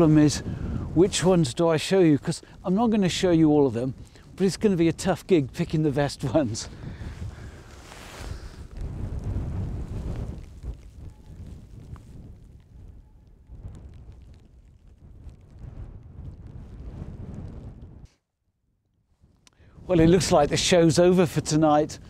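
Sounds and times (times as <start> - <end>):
wind buffeting microphone: 0.0 - 18.1, 19.6 - 22.0.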